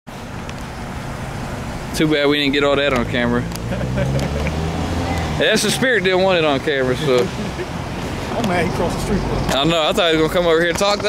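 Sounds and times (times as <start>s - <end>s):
road traffic noise: 0.1s - 11.0s.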